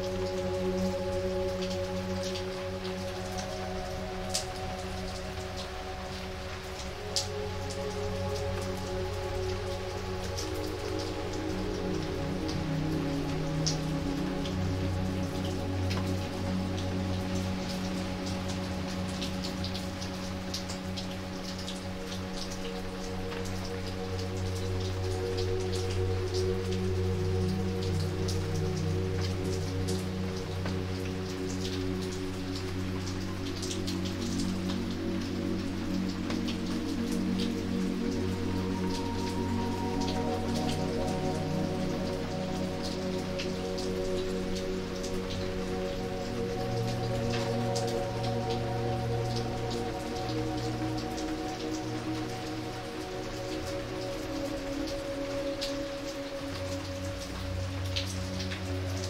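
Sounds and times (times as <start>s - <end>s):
rain on wet pavement: 0.0s - 59.0s
soft ambient music: 0.0s - 59.0s.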